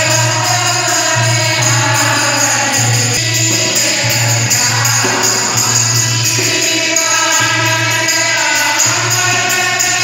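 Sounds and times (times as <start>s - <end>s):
hand drum: 0.0s - 10.0s
harmonium: 0.0s - 10.0s
jingling percussion: 0.0s - 10.0s
women singing devotional song: 0.0s - 10.0s.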